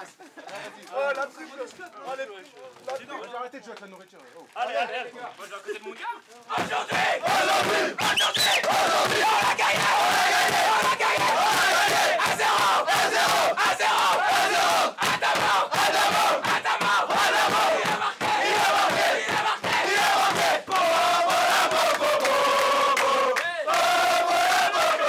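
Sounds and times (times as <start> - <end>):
group chanting and shouting: 6.4 - 25.0.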